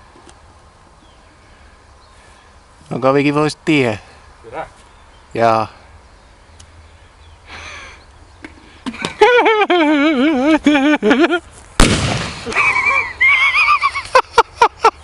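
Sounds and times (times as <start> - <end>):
sharp cracks: 11.7 - 13.0
firecracker bang: 11.8 - 12.8.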